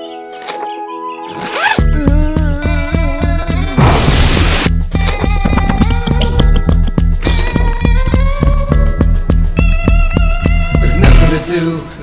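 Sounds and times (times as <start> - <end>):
zipper pulled open: 1.3 - 1.9.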